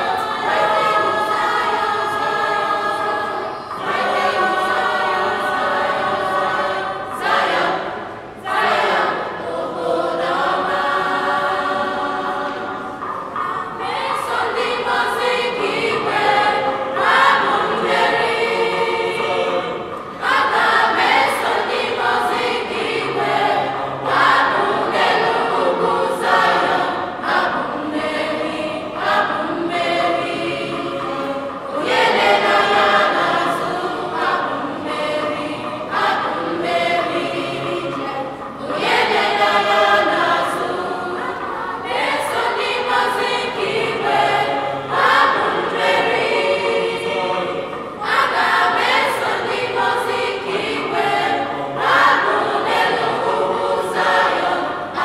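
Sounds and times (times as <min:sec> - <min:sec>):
choir singing: 0:00.0 - 0:55.0.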